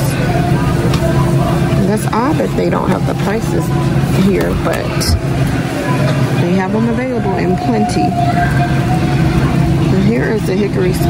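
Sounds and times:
faint voices of shoppers: 0.0s - 11.0s
steady low hum: 0.0s - 11.0s.

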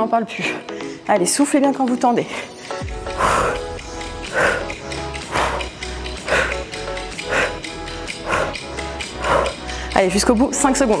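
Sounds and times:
workout music with steady beat: 0.0s - 11.0s
sharp forceful exhalations: 2.9s - 10.0s.

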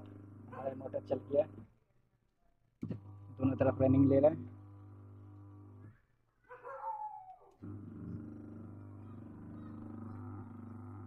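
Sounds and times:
washing machine motor humming: 2.8s - 5.9s, 7.6s - 11.0s.

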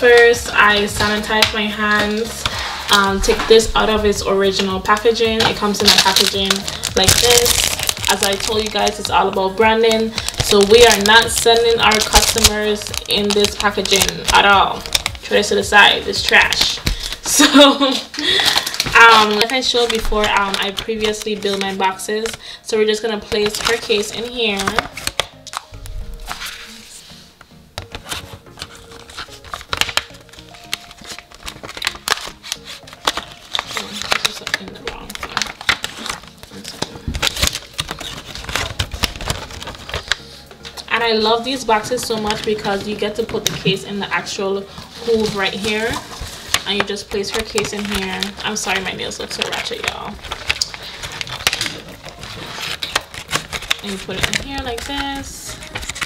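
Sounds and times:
plastic packaging crinkling: 0.0s - 27.2s, 27.8s - 56.0s
faint background music: 0.0s - 56.0s.

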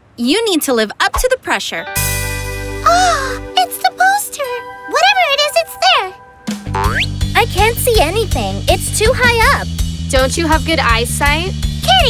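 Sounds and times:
children's background music: 1.8s - 12.0s
cartoon vocal sounds: 2.9s - 3.5s
cartoon boing: 6.6s - 7.2s.

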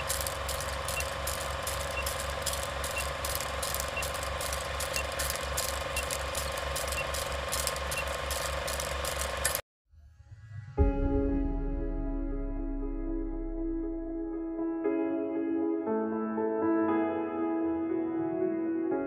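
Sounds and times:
film projector clatter: 0.0s - 9.6s.

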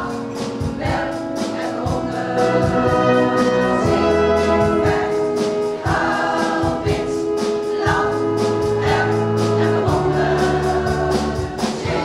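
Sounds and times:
steady beat: 0.0s - 12.0s
women's choir singing: 0.0s - 12.0s.

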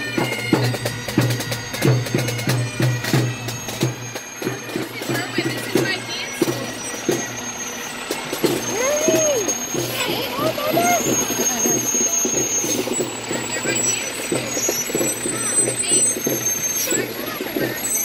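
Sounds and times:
diesel truck engine rumbling: 0.0s - 18.0s.

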